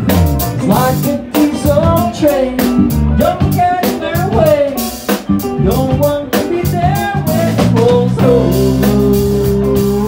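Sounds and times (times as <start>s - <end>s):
drum kit: 0.0s - 10.0s
electric bass: 0.0s - 10.0s
man singing into a microphone: 0.6s - 10.0s.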